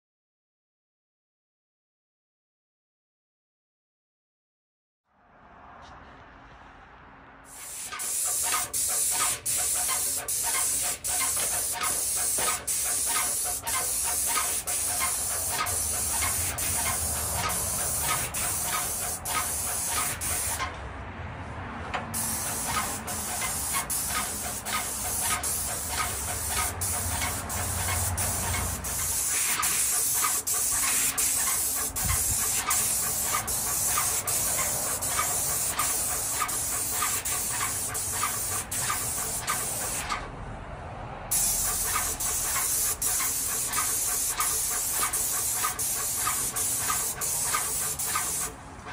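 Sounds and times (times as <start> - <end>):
paint spray gun hissing: 7.5 - 20.7, 22.1 - 40.2, 41.3 - 48.6.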